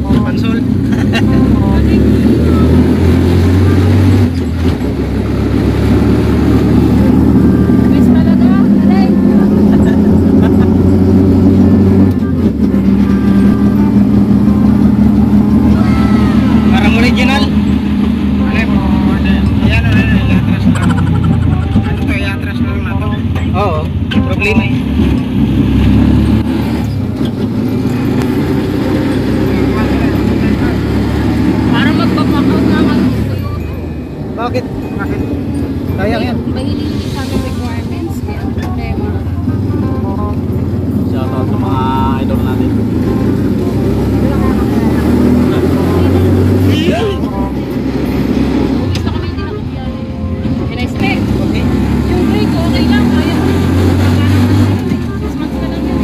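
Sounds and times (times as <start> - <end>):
vehicle engine running: 0.0 - 56.0.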